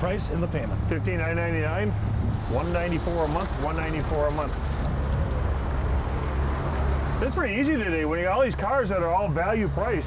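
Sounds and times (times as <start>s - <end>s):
cars driving slowly past: 0.0s - 10.0s.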